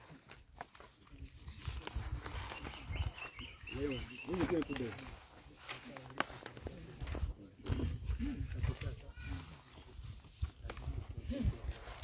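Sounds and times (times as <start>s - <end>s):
indistinct low voices: 0.0s - 12.0s.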